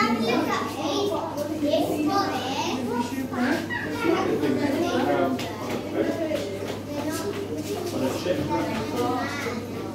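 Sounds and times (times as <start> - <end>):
children talking and calling out: 0.0 - 9.9.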